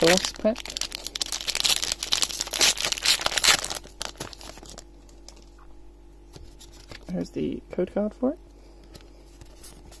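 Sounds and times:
foil wrapper crinkling: 0:00.0 - 0:05.6.

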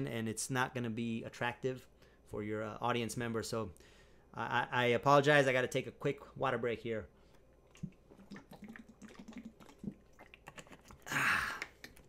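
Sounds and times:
mouth and lip clicks: 0:07.6 - 0:12.0
person swallowing water: 0:07.6 - 0:12.0.

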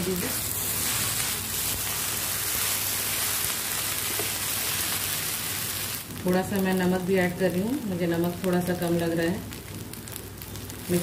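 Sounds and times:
spatula tossing noodles: 0:00.0 - 0:06.0
noodles sizzling in a pan: 0:00.0 - 0:11.0.

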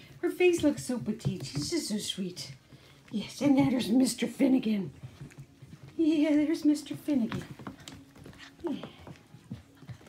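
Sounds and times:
puppies moving with soft clicks: 0:00.0 - 0:10.0.

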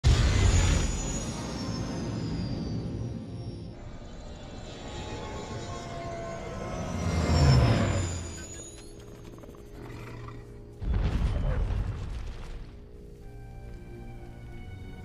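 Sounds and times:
film music: 0:00.0 - 0:15.0
spaceship engine flying past: 0:00.1 - 0:09.8.

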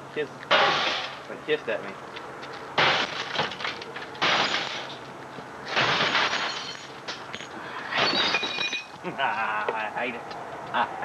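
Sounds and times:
glass shattering: 0:00.5 - 0:01.2, 0:02.8 - 0:05.1, 0:05.7 - 0:09.0
sledgehammer blows: 0:00.5 - 0:01.2, 0:07.8 - 0:08.9.

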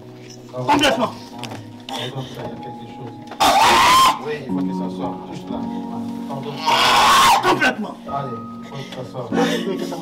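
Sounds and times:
church music: 0:00.0 - 0:10.0.

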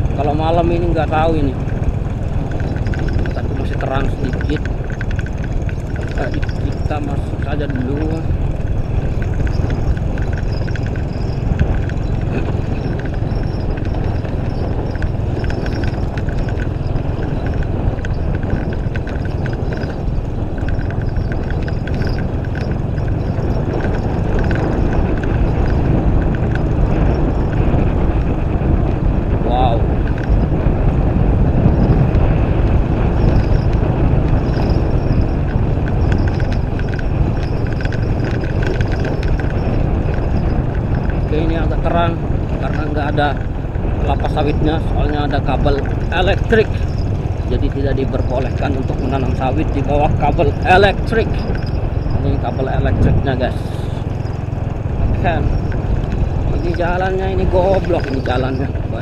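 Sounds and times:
motorcycle engine rumble: 0:00.0 - 0:59.0
wind on microphone: 0:00.0 - 0:59.0.

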